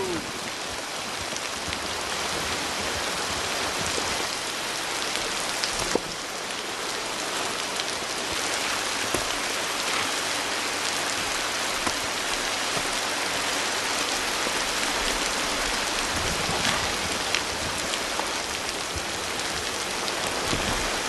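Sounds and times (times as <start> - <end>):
steady rain falling: 0.0 - 21.0.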